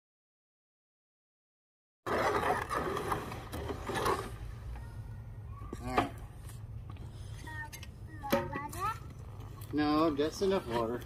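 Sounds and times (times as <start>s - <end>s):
hoe scraping wet concrete: 2.1s - 4.6s, 9.8s - 11.0s.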